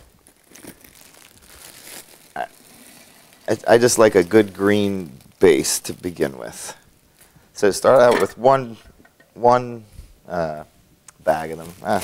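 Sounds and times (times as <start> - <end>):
bag crinkling: 0.0 - 7.4, 11.2 - 12.0.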